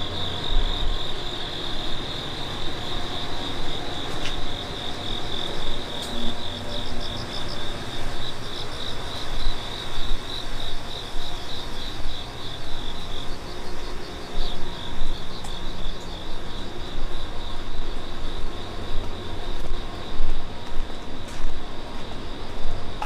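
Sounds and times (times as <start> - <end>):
cricket chirping: 0.0 - 23.0.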